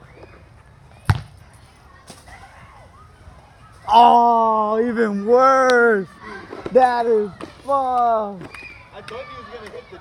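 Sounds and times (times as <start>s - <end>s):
rubber ball thump: 1.1s - 1.4s.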